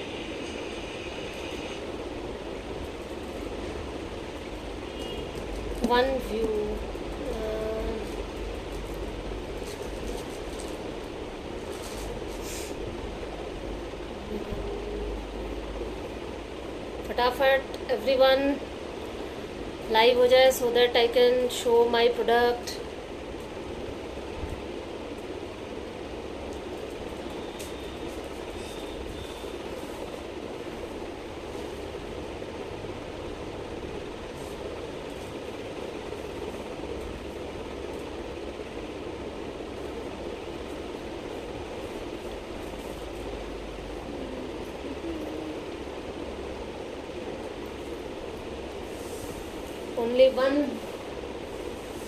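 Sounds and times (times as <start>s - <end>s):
rumble and hiss: 0.0s - 52.0s.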